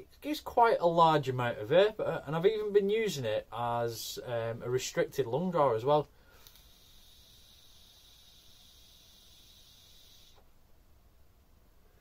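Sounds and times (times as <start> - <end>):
faint hiss of vapour inhale: 6.1 - 10.6.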